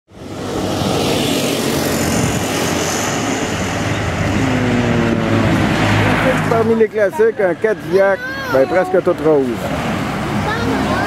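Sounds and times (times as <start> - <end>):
vehicle engine droning: 0.1 - 11.0.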